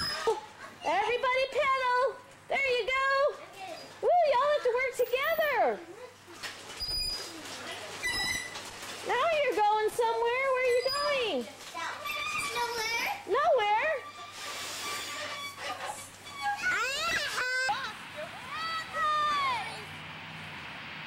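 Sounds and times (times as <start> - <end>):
children calling out: 10.6 - 13.3, 15.2 - 20.0.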